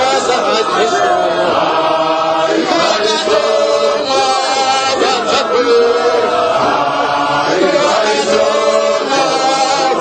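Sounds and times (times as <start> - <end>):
group chanting a hymn: 0.0 - 10.0.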